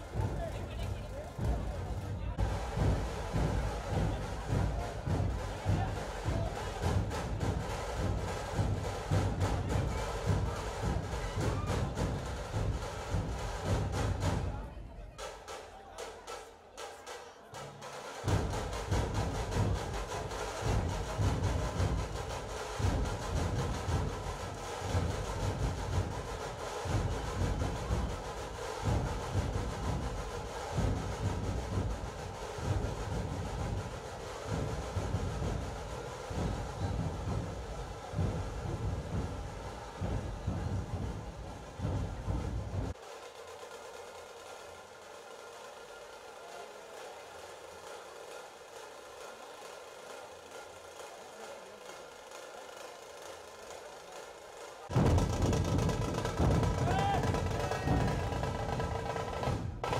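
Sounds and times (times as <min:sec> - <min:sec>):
low drum thumps: 0:00.0 - 0:14.6, 0:18.2 - 0:43.0, 0:54.9 - 0:59.9
festival crowd din: 0:00.0 - 0:59.9.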